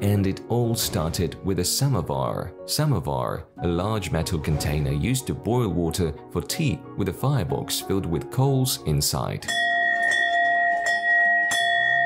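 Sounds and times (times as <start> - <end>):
hanging metal bell ringing: 9.5 - 12.0.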